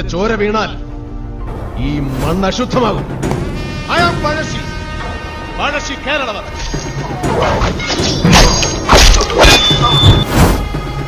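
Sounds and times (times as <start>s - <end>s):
dramatic film music: 0.0s - 11.0s
whacks and crashes of fighting: 7.4s - 10.6s.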